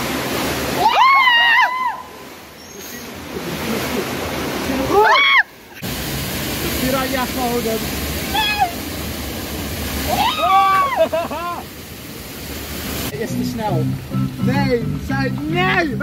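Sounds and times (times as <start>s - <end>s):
waterfall rushing: 0.0s - 16.0s
people shrieking and yelling: 0.8s - 2.1s, 4.9s - 5.5s, 10.1s - 11.2s.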